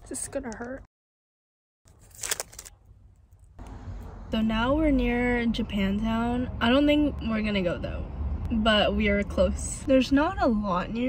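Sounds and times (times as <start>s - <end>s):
plastic crinkling: 1.9s - 3.5s.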